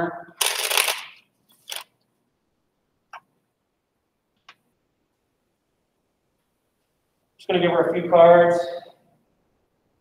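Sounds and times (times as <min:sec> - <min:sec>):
playing cards shuffling: 0:00.4 - 0:02.0.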